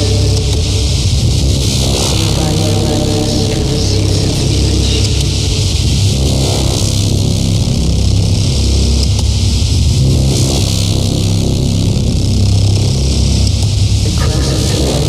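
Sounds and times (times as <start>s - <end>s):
low droning electronic score: 0.0s - 15.0s.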